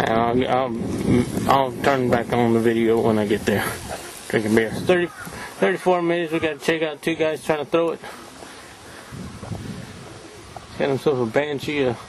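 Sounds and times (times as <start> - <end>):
steady outdoor hiss: 0.0 - 12.0
wind buffeting microphone: 0.0 - 12.0.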